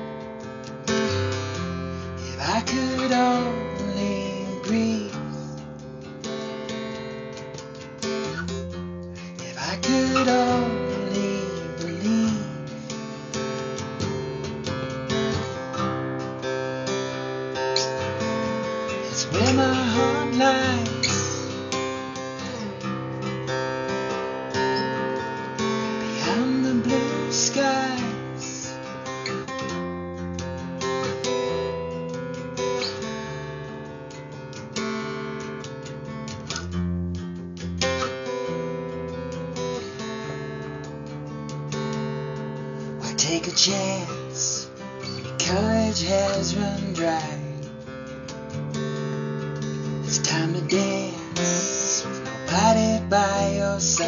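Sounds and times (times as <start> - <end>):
guitar strummed and picked: 0.0 - 54.0.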